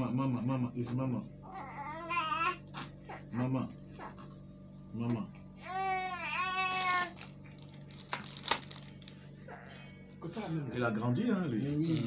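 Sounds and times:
baby whining cry: 1.4s - 3.3s, 5.6s - 7.2s.

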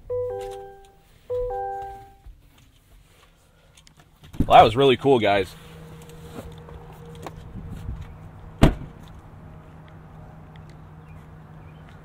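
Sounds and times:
car door slamming: 8.6s - 9.0s.

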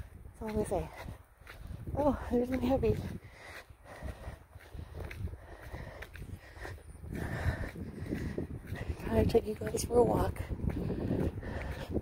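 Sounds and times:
footsteps walking: 0.0s - 12.0s
wind rumbling on microphone: 0.0s - 12.0s.

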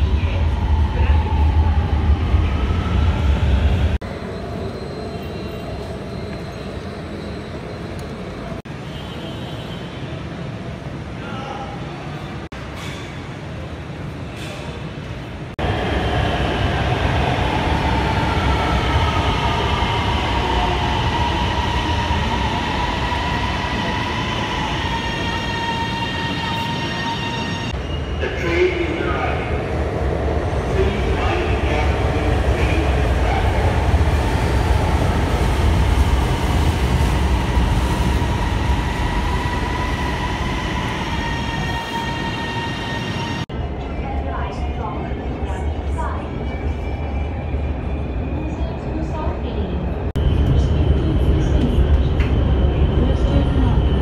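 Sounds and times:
train rumbling: 12.4s - 54.0s.

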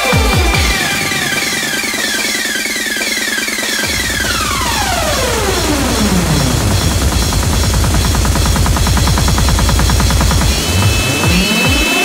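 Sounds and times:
bounce dance music: 0.0s - 12.0s
heavy kick drums: 0.0s - 12.0s
synth sweep: 0.0s - 12.0s
fast dense bass roll: 3.8s - 11.9s.

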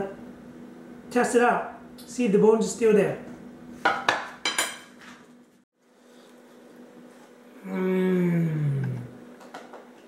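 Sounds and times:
cutlery clinking against plate: 3.9s - 4.9s.

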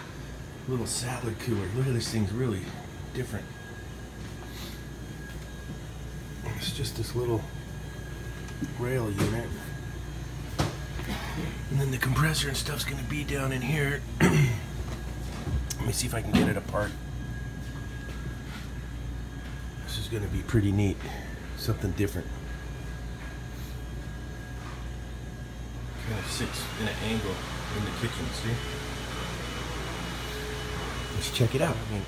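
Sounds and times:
high-pitched whine: 0.0s - 32.0s
low machinery hum: 0.0s - 32.0s.

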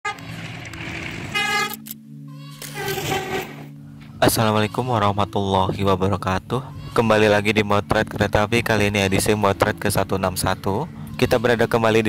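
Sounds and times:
locomotive horn blast: 0.1s - 1.8s.

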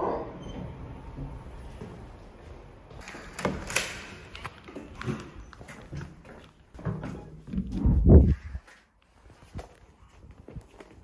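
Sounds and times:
sneaker footsteps on stone floor: 4.5s - 11.0s.

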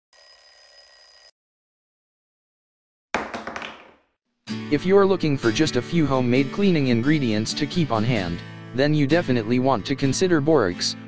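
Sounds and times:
high ringing tone: 0.1s - 1.3s.

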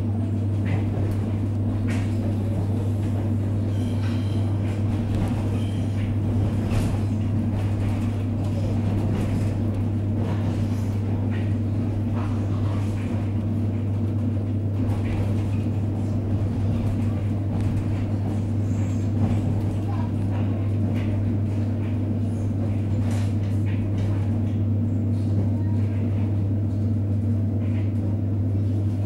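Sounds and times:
train running hum: 0.0s - 29.0s.

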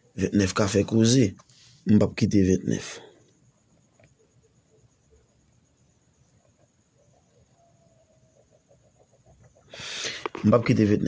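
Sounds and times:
chicken clucking: 6.4s - 10.4s.

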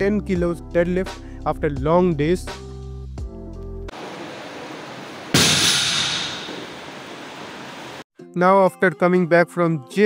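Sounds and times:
room noise hiss: 3.9s - 8.0s
barbell crashing on gym floor: 5.3s - 6.8s.

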